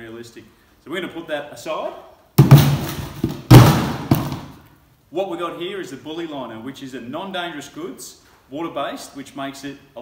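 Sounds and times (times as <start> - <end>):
loud thumps of items set down: 2.4 - 4.6.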